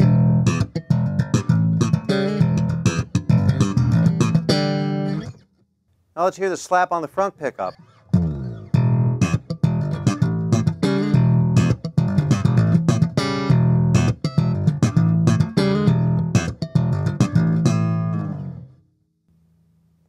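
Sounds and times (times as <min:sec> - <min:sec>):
slap electric bass: 0:00.0 - 0:05.4, 0:08.1 - 0:18.8.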